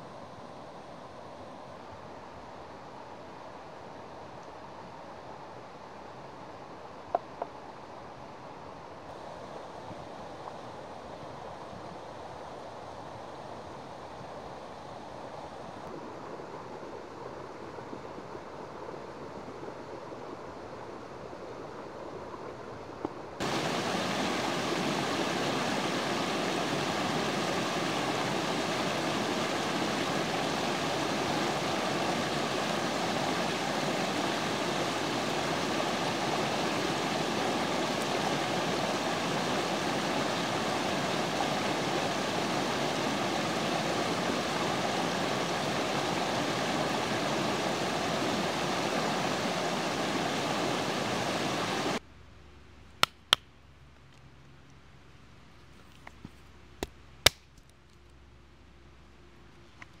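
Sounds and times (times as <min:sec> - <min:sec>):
creek rushing over stones: 0:23.4 - 0:52.0.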